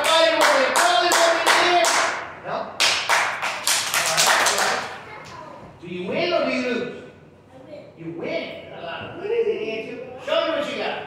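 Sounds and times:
children clapping rhythmically: 0:00.0 - 0:05.0.

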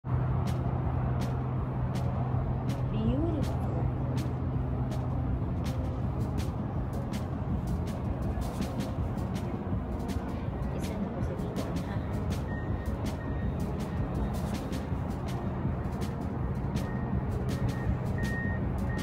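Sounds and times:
ship hum and rushing noise: 0:00.0 - 0:19.0
faint voices: 0:07.7 - 0:15.0.

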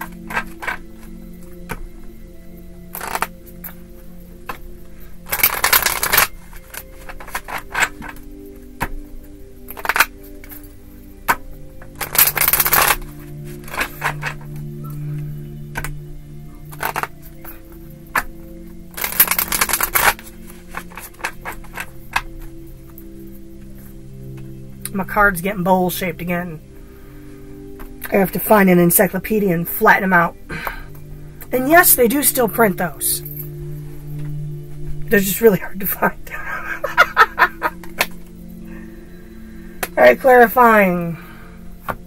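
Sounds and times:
soft background music: 0:00.0 - 0:42.0
cards riffling: 0:04.4 - 0:09.0, 0:09.6 - 0:10.7, 0:11.3 - 0:16.0, 0:16.7 - 0:17.5, 0:18.1 - 0:22.6.

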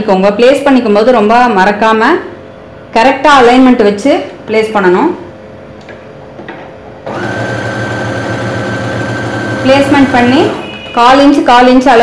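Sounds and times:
sewing machine stitching: 0:07.1 - 0:11.0.

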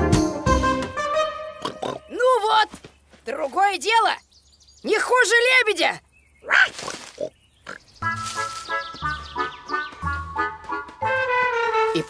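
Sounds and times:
music cue with held melody: 0:08.1 - 0:12.0.

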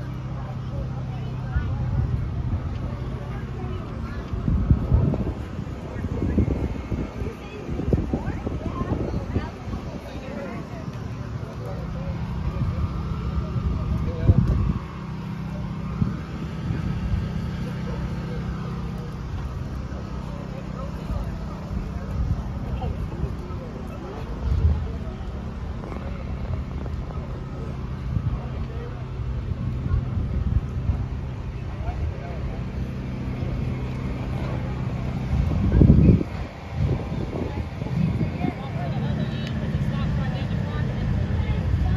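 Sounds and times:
car engine running: 0:00.0 - 0:41.9
people talking faintly: 0:00.0 - 0:41.9.

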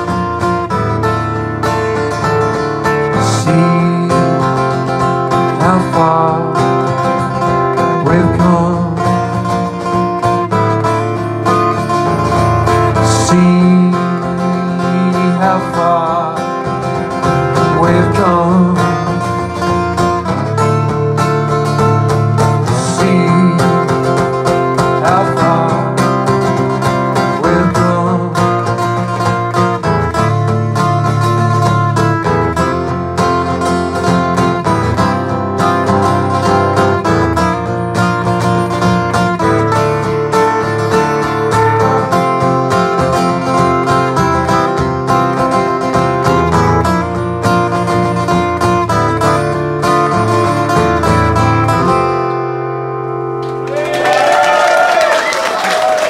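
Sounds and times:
acoustic guitar strummed: 0:00.0 - 0:54.8.

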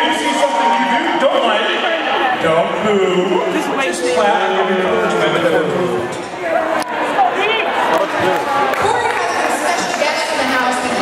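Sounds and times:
man speaking with echo: 0:00.0 - 0:08.7.

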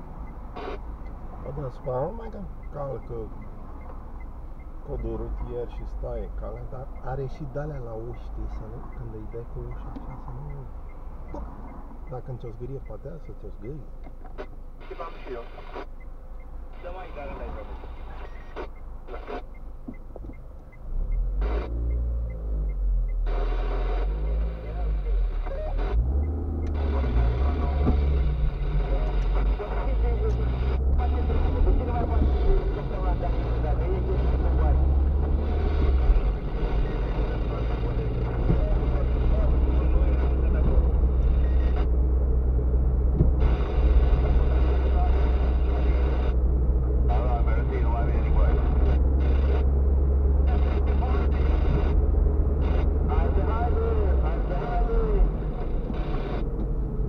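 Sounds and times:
car engine and road noise: 0:00.0 - 0:57.0.

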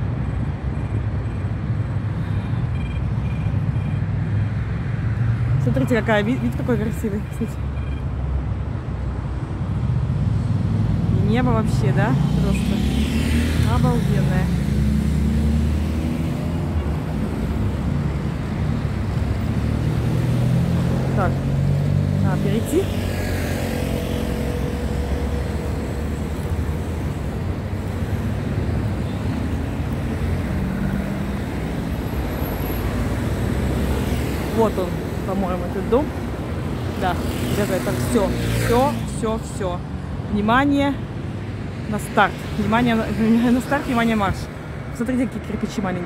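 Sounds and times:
road traffic rumble: 0:00.0 - 0:46.0.

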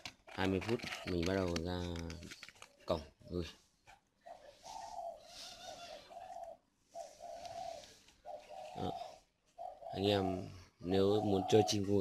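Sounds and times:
doves cooing: 0:00.1 - 0:12.0.

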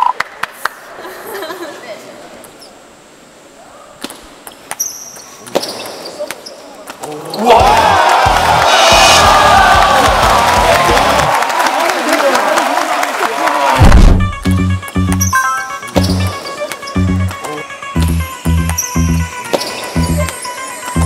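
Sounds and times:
music with heavy beat: 0:13.9 - 0:15.2, 0:15.8 - 0:20.3.

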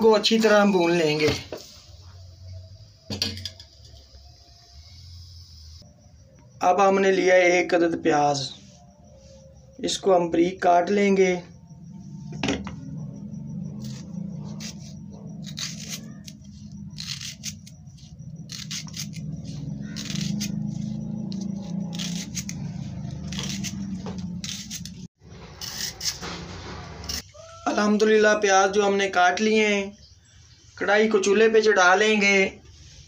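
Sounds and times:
steady low hum: 0:11.1 - 0:25.1
knife slicing onion: 0:13.8 - 0:16.4, 0:17.0 - 0:25.0.

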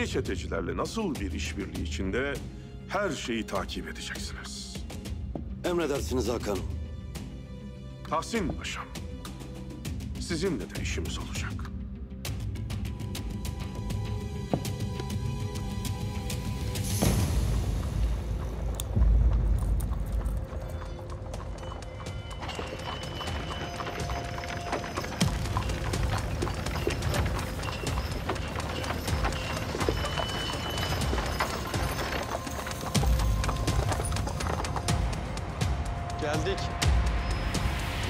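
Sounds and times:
background music: 0:00.0 - 0:38.0
horse hooves clip-clopping on cobbles: 0:12.7 - 0:38.0.

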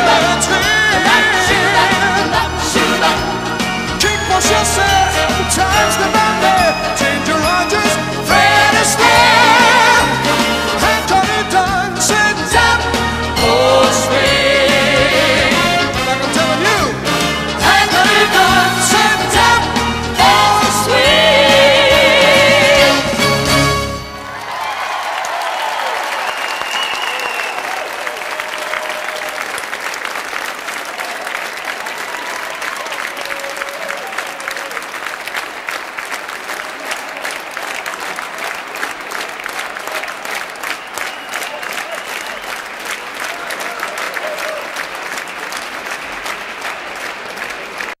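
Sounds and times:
audience applauding: 0:24.0 - 0:48.0.

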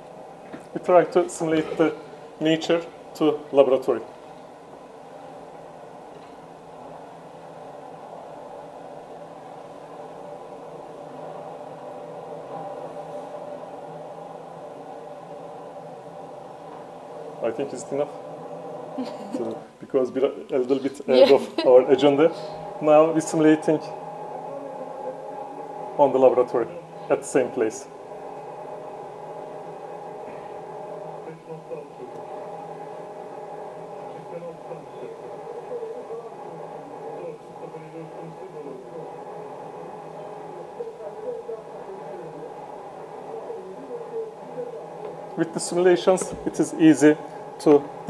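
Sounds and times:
steady machine hum: 0:00.0 - 0:48.0.

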